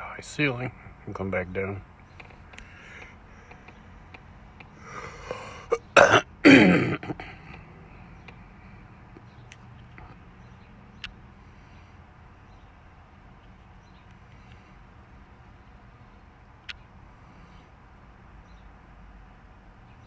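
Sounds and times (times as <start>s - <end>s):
faint steady hum: 0.0s - 20.0s
light clicks: 2.0s - 4.8s, 9.1s - 11.2s, 16.6s - 16.9s
man clearing his throat: 5.0s - 7.5s.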